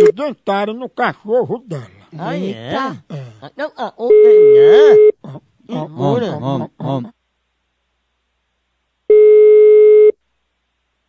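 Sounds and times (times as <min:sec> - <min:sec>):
telephone ringback beep: 0:04.1 - 0:05.1, 0:09.1 - 0:10.1.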